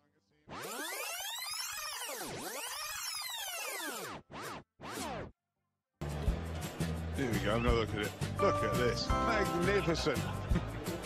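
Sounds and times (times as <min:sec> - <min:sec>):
synthesized pitch sweep: 0:00.5 - 0:05.2.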